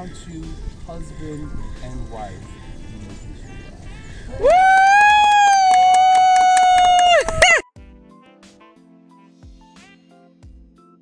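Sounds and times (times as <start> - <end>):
high-pitched woo cheer: 4.2 - 7.7
lower woo cheer: 4.2 - 7.7
hand claps: 4.6 - 7.6.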